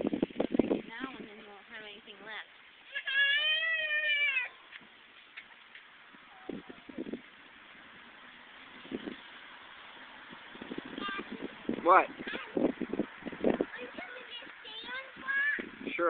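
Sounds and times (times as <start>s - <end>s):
child's high-pitched vocal call: 2.9s - 4.6s.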